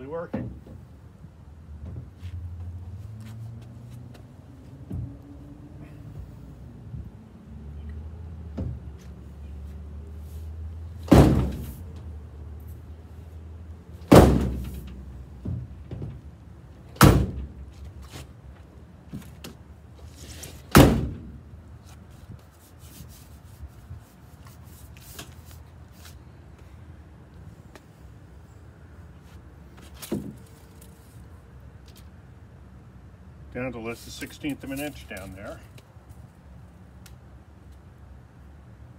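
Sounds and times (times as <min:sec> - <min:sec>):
steel car door thudding: 0:11.0 - 0:11.8, 0:14.0 - 0:16.2, 0:17.0 - 0:17.6, 0:20.7 - 0:21.4.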